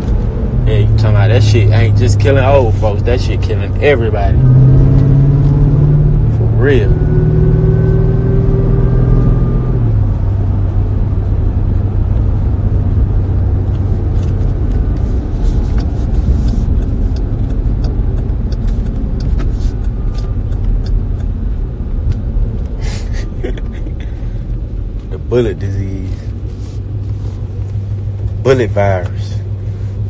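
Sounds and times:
car engine and road rumble: 0:00.0 - 0:30.0.

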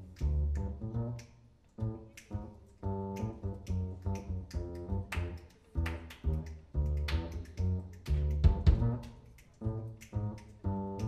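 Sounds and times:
upright bass plucked: 0:00.0 - 0:01.2, 0:01.8 - 0:11.0
hand claps: 0:02.1 - 0:11.0.

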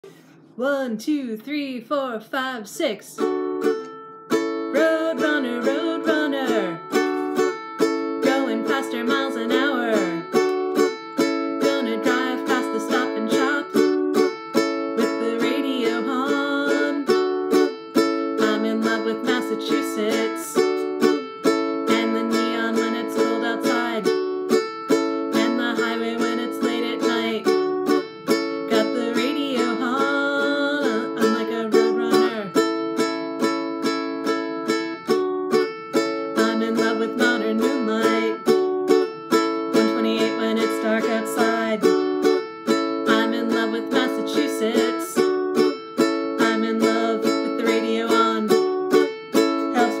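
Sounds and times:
ukulele strumming: 0:02.8 - 0:50.0.

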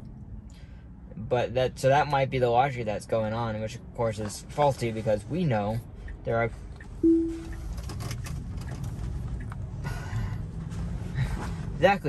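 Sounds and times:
car rolling hum: 0:00.0 - 0:12.0
electronic chime: 0:07.0 - 0:07.6.

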